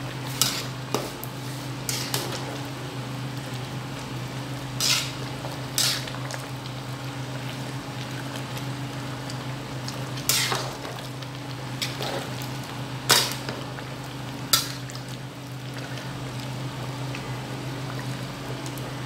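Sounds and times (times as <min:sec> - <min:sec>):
porridge simmering and bubbling: 0:00.0 - 0:19.0.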